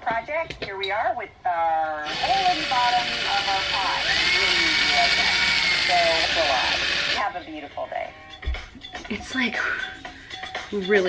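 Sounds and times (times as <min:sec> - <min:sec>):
cordless drill grinding into ceramic: 0:02.0 - 0:07.3.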